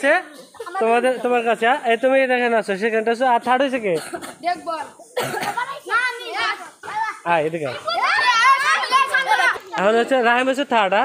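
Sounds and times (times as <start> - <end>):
children talking excitedly: 0.0 - 11.0.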